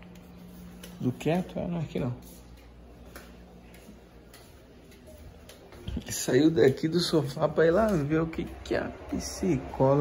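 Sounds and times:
footsteps on tiled floor: 0.0 - 10.0.

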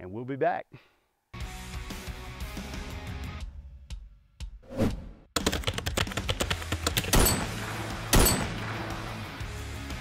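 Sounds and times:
rapid clatter of sharp clicks: 5.4 - 7.4.

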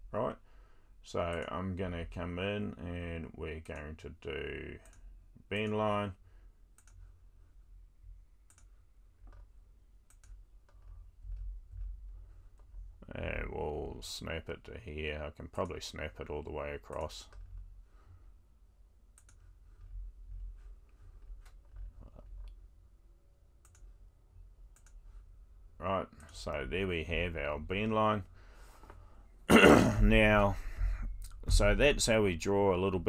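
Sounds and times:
faint low steady hum: 0.0 - 33.0
computer mouse clicks: 6.7 - 7.1, 8.4 - 11.9, 19.1 - 19.9, 23.6 - 23.9, 24.7 - 25.0.

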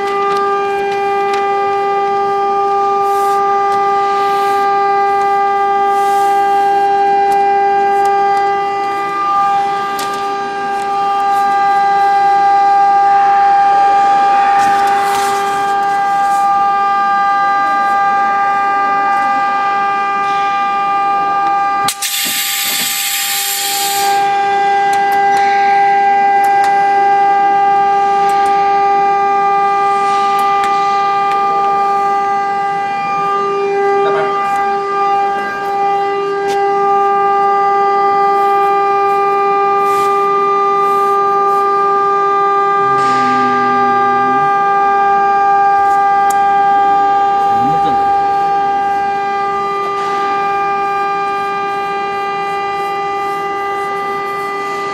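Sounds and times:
burst of hiss: 21.9 - 24.2
press machine high-pitched whine: 21.9 - 24.3.

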